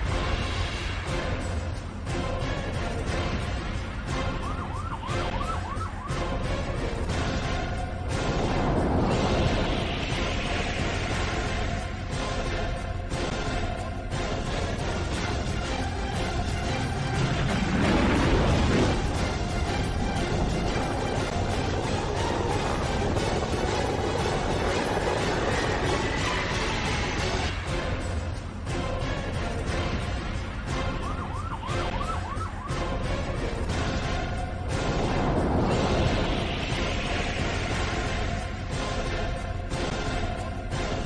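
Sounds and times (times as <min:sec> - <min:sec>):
music with heavy bass: 0:00.0 - 0:41.0
yelping siren sound effect: 0:04.4 - 0:06.4, 0:31.0 - 0:32.9
dense rumbling noise: 0:06.5 - 0:31.0, 0:32.8 - 0:41.0.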